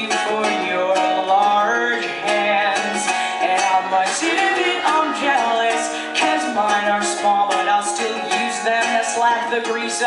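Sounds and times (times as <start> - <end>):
strummed ukulele: 0.0 - 10.0
woman singing: 0.0 - 10.0.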